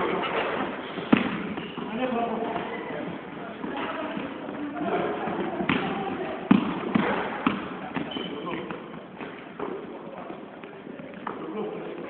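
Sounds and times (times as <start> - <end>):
faint background voices: 0.0 - 12.0
basketball bouncing on wooden floor: 3.6 - 9.9.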